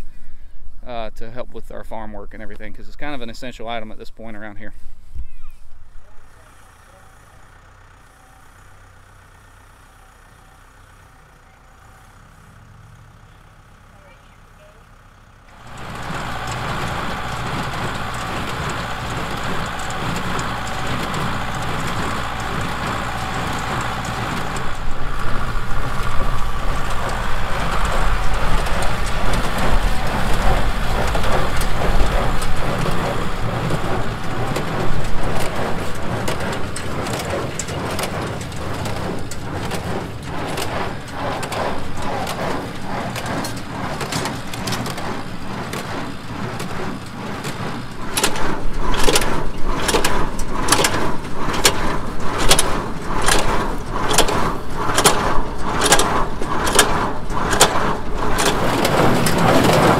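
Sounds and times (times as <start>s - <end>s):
tractor engine running under load: 5.8s - 59.9s.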